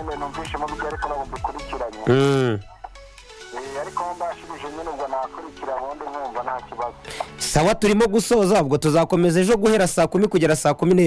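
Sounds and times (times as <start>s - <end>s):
person talking: 0.0s - 2.8s
electronic music: 0.0s - 7.4s.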